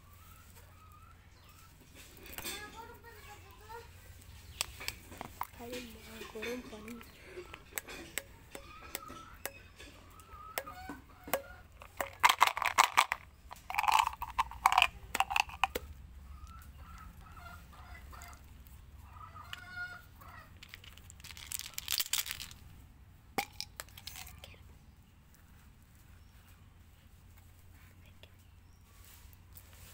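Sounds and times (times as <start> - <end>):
hard candies clicking and rattling: 4.5 - 5.8, 10.6 - 15.9, 20.6 - 22.8, 23.4 - 24.6
plastic wrappers crinkling and tearing: 20.6 - 22.6.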